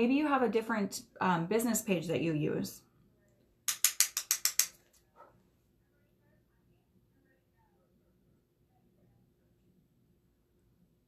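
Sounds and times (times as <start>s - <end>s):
sharp clicks: 3.7s - 4.9s.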